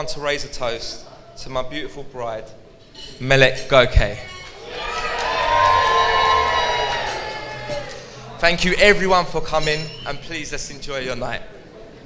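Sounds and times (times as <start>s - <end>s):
crowd cheering: 4.4s - 8.7s.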